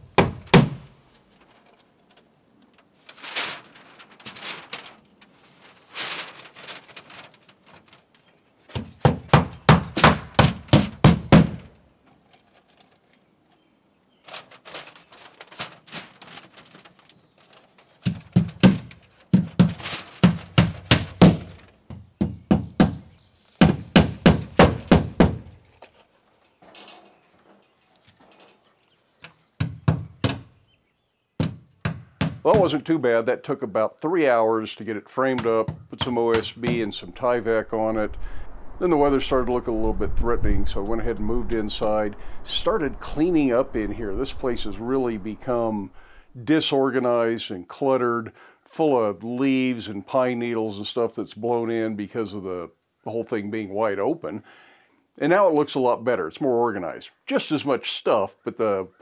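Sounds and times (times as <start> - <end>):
rustling and scraping: 1.2 - 10.7, 14.2 - 21.9, 24.8 - 29.4.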